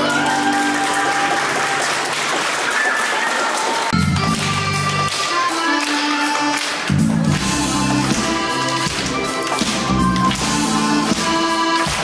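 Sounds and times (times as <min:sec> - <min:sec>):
audience applause: 0:00.0 - 0:07.5.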